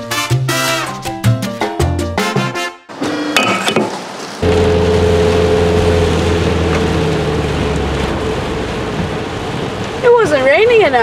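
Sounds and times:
rain on car windscreen: 3.9s - 11.0s
car engine hum: 4.4s - 10.8s.

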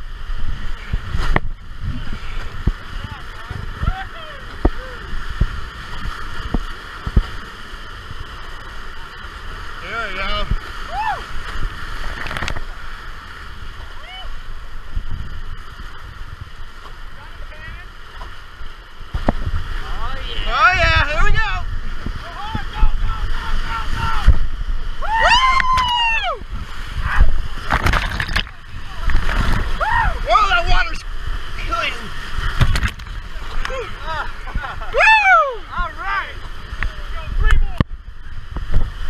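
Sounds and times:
wind buffeting microphone: 0.0s - 8.6s, 9.9s - 17.8s, 18.6s - 39.0s
whitewater rapids rushing: 0.0s - 39.0s
people yelling and whooping: 3.8s - 5.2s, 10.8s - 11.4s, 13.9s - 14.4s, 24.9s - 27.4s, 29.6s - 31.0s, 33.5s - 36.4s
raft knocking on wave: 19.1s - 20.0s, 25.4s - 33.8s.

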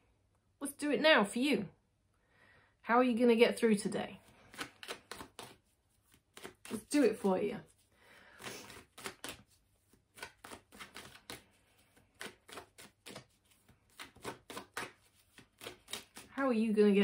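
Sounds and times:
cards being shuffled: 4.2s - 16.5s.

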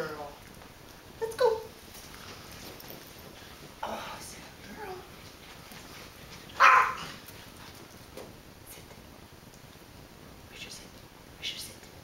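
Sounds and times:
dog bark: 6.6s - 7.2s.

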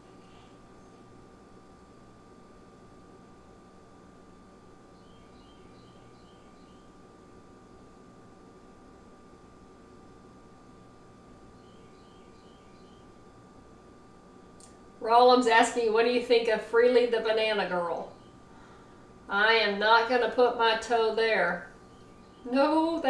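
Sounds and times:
faint steady hum: 0.0s - 23.0s
faint high chirps: 4.9s - 7.0s, 11.5s - 13.2s.

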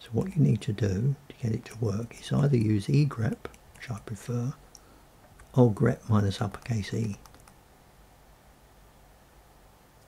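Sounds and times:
keyboard keys clicking: 6.6s - 7.6s.

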